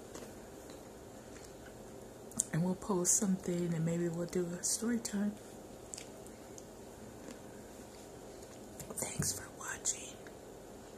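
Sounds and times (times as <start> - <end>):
woman whispering: 8.9 - 10.3.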